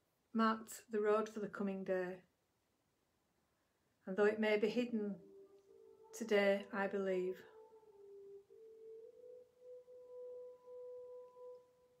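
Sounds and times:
sustained pure tone music: 3.6 - 12.0.

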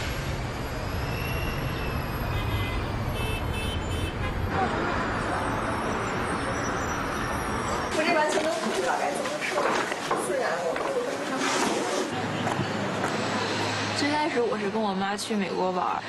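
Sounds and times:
outdoor hubbub: 0.0 - 16.0
road traffic rumble: 0.0 - 16.0.

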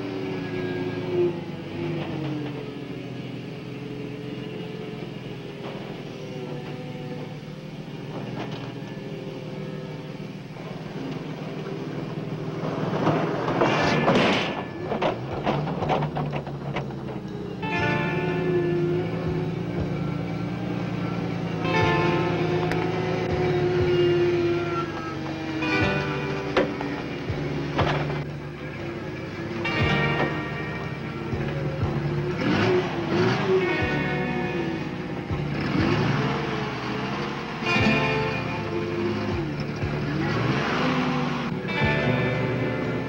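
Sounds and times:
forklift engine running: 0.0 - 43.0
instrumental film score music: 4.9 - 43.0.

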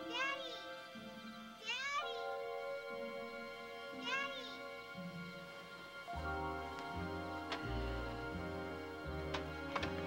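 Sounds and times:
sustained music chords: 0.0 - 10.0.

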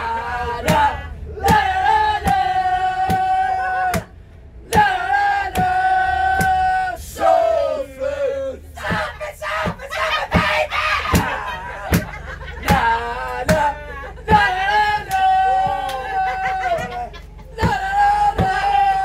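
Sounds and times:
group of people singing: 0.0 - 19.0.

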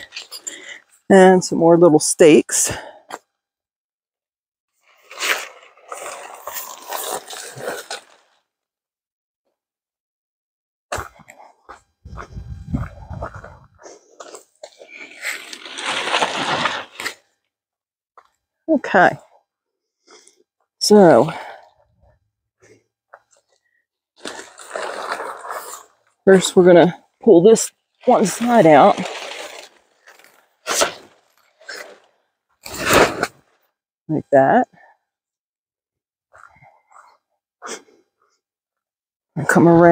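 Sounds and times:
tent fabric rustling and scraping: 4.8 - 8.4, 11.5 - 17.2, 24.2 - 26.0, 28.0 - 33.6
low rumbling: 12.1 - 13.8
tent fabric rustling and flapping: 28.2 - 32.1.

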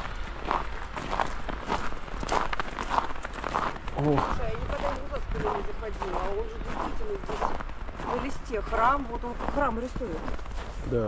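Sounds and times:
footsteps on snow: 0.0 - 11.0.

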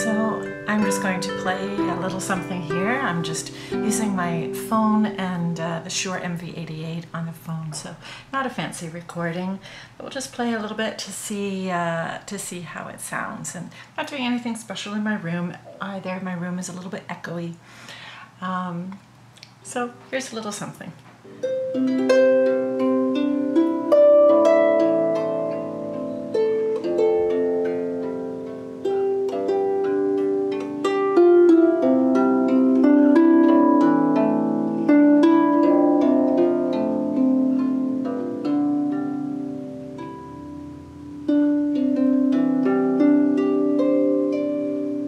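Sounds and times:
harp plucked melody and chords: 0.0 - 7.3, 21.3 - 45.0.

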